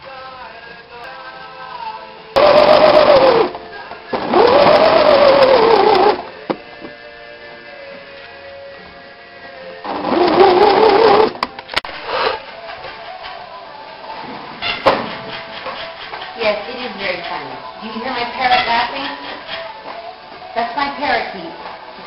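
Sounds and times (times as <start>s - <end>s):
sewing machine motor stitching: 2.4s - 3.6s, 4.2s - 6.3s, 9.9s - 11.4s.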